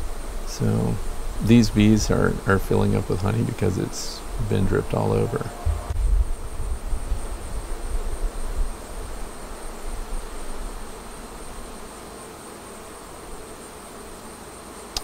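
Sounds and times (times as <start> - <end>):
honeybees buzzing: 0.0 - 15.0
low rumble on microphone: 0.5 - 8.8.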